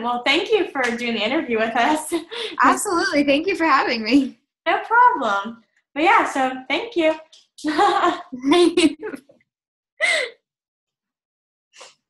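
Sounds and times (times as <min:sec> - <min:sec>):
woman laughing: 0:02.4 - 0:03.6, 0:07.7 - 0:09.2, 0:10.0 - 0:10.3
trailing voice: 0:02.6 - 0:04.3.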